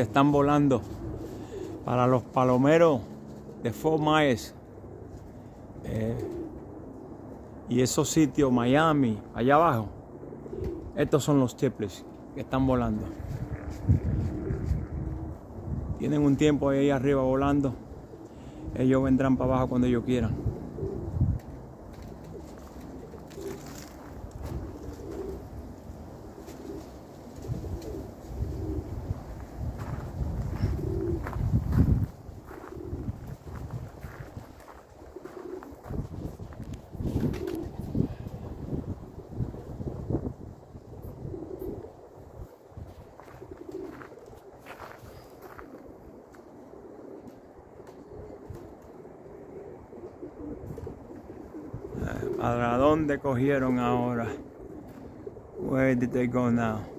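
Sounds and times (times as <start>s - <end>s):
pigeons cooing: 0.0s - 56.9s
wind rumbling on microphone: 12.0s - 53.1s.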